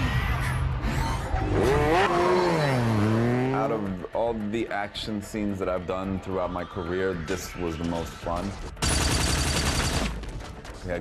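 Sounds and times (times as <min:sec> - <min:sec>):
motorcycle engine revving: 0:01.4 - 0:03.9.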